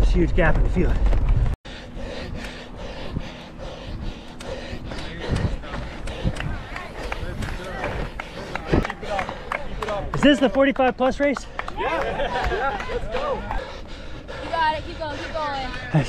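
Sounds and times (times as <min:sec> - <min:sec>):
wind rumble: 0:00.0 - 0:10.1.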